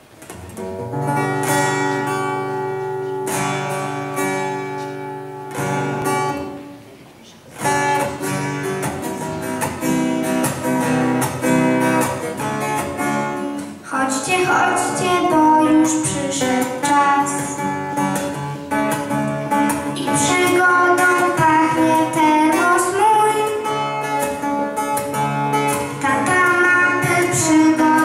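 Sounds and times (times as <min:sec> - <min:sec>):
acoustic guitar strumming chords: 0:00.0 - 0:28.0.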